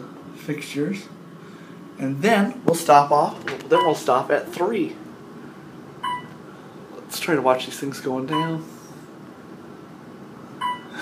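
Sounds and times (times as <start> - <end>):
elevator hum: 0.0 - 11.0.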